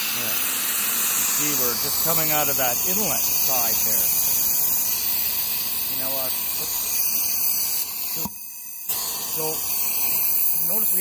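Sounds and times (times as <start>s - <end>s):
compressed air hissing: 0.0s - 11.0s.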